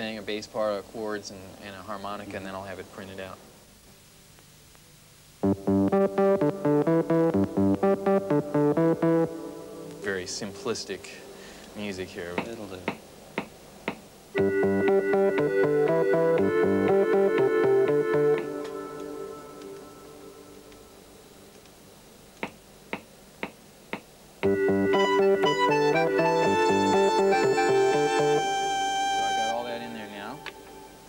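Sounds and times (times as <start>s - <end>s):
low synth bass line: 5.4s - 9.6s, 14.4s - 18.4s
synthesizer chords: 5.4s - 10.0s, 14.4s - 20.6s, 24.4s - 31.0s.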